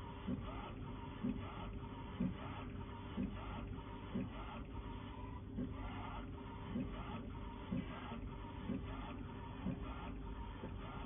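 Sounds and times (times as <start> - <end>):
printer running noise: 0.0 - 11.0.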